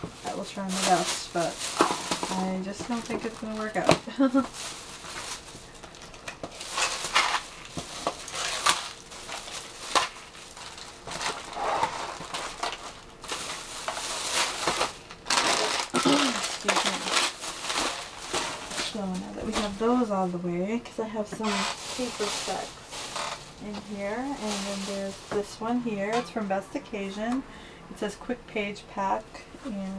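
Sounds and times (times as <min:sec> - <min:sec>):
plastic bag rustling: 0:00.0 - 0:27.2.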